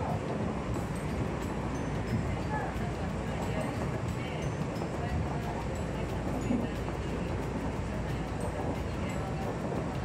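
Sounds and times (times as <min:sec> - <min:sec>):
train running rumble inside carriage: 0:00.0 - 0:10.0.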